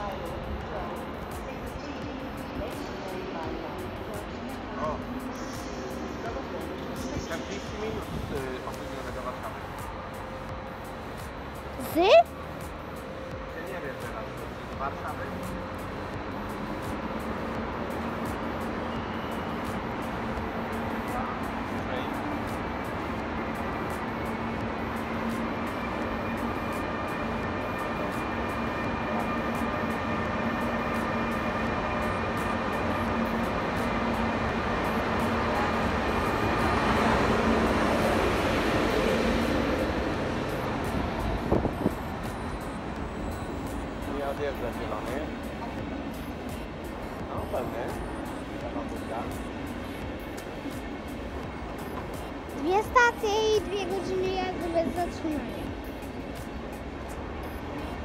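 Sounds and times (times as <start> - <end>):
electric locomotive hum: 0.0 - 58.0
rolling train wheels: 0.0 - 58.0.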